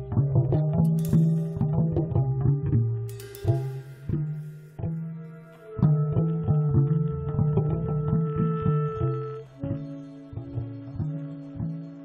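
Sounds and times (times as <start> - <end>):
electric bass plucking low notes: 0.0 - 12.0.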